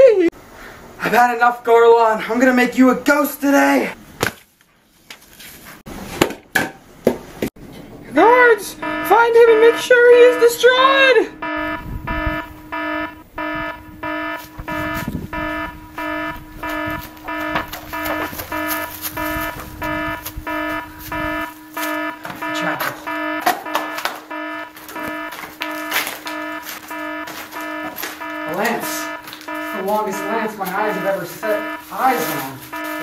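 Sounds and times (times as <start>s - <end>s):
alarm beeps: 8.2s - 33.0s
steady low tone: 8.7s - 31.9s.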